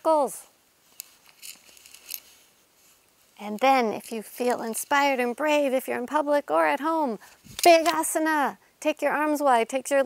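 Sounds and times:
clothing rustling: 0.8 - 5.2.

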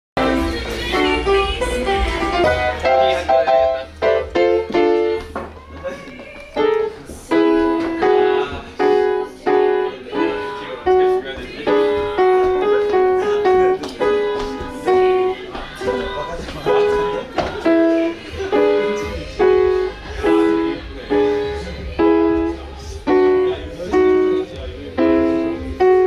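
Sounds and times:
piano tune: 0.2 - 26.0.

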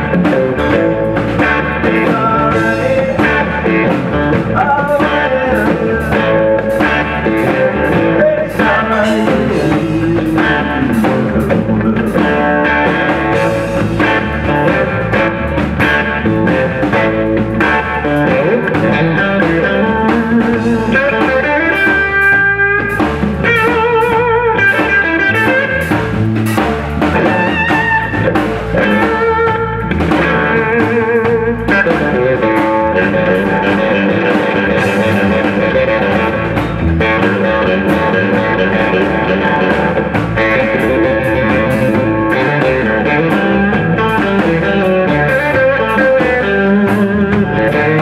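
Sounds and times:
drums: 0.0 - 48.0
electric guitar with vibrato: 0.0 - 48.0
upright bass line: 0.0 - 48.0.

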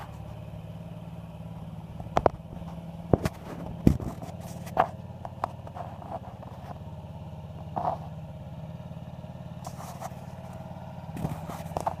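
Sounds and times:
scooter engine running: 0.0 - 12.0.

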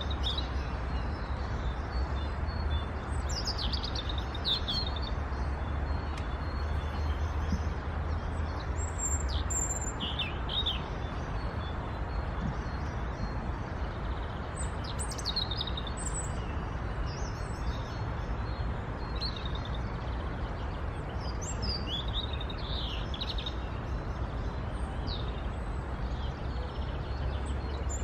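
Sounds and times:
robin singing: 0.0 - 28.0.

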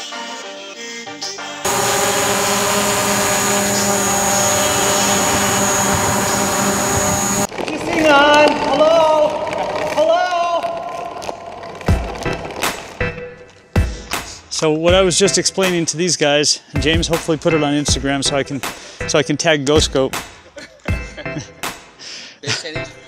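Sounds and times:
drone hovering whine: 1.7 - 7.5.

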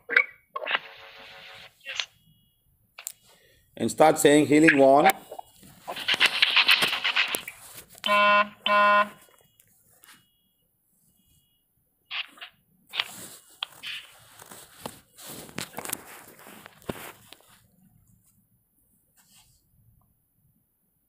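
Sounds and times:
crackly phone line noise: 0.0 - 18.4
short buzzy electronic beeps: 4.8 - 9.3
faint clicks and rustles: 5.1 - 8.1, 12.1 - 20.1.

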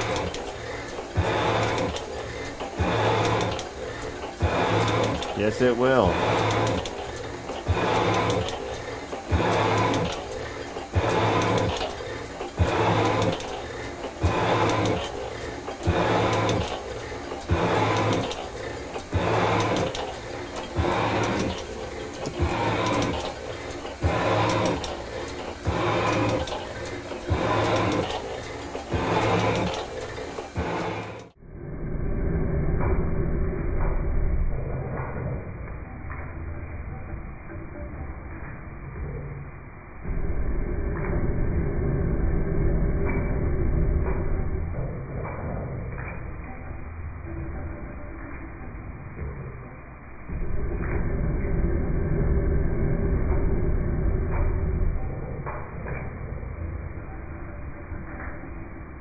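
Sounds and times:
metal shaper cutting cast iron: 0.0 - 31.4.

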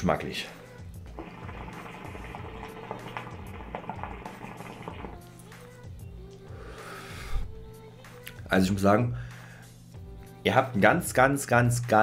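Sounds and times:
background music: 0.0 - 12.0
hookah water bubbling: 1.0 - 5.4.

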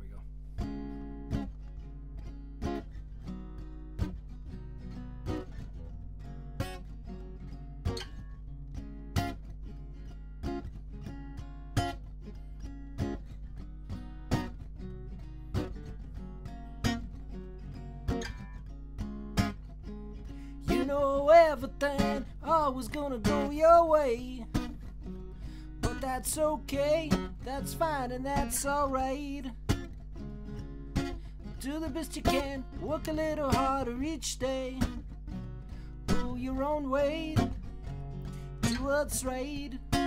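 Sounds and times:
acoustic guitar blues instrumental: 0.0 - 40.0.

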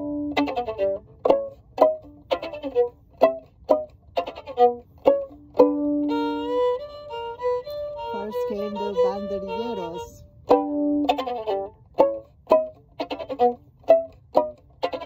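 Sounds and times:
solo violin: 0.0 - 15.0.

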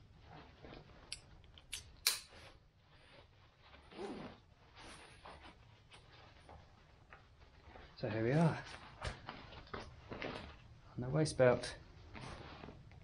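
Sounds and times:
webbing and fabric rustling: 0.0 - 1.6, 2.3 - 13.0.

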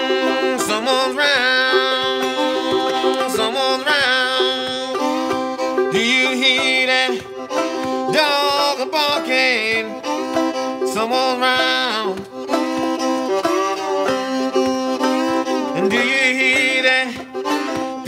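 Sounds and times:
banjo plucked rhythm: 0.0 - 18.0
fiddle melody: 0.0 - 18.0.

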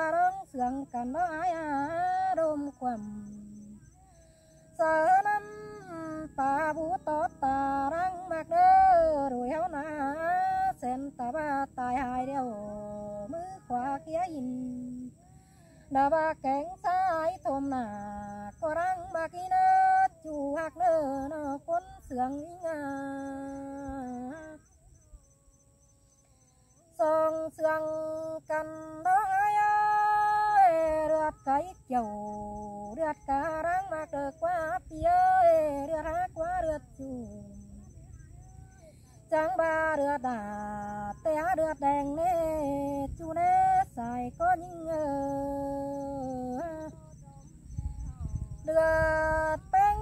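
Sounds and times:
woman singing wordless vowels: 0.0 - 50.0.

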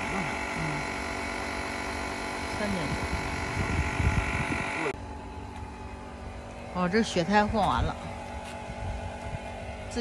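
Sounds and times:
tyre inflator motor buzzing: 0.0 - 10.0.

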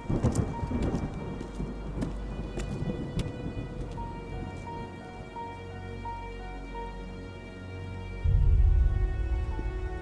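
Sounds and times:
thunder rumbling: 0.0 - 6.2, 8.2 - 10.0
held music drone: 0.0 - 10.0.

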